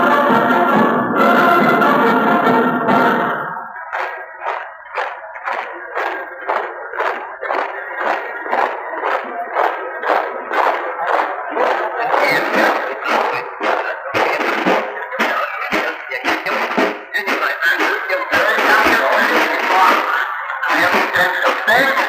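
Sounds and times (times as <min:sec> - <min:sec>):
steady drumbeat: 0:00.0 - 0:22.0.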